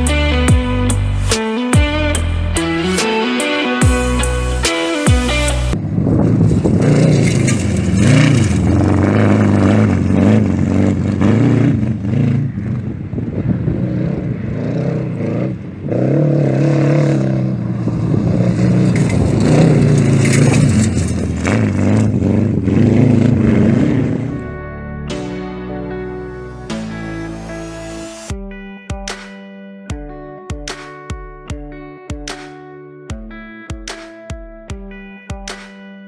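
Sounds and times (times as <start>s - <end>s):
guitar music: 0.0s - 5.8s, 21.4s - 36.0s
race car engine revving: 6.2s - 24.6s.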